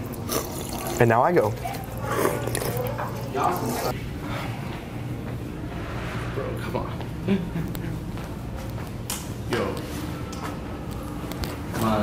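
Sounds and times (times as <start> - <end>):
low room tone hum: 0.0 - 12.0
person laughing: 7.2 - 8.2.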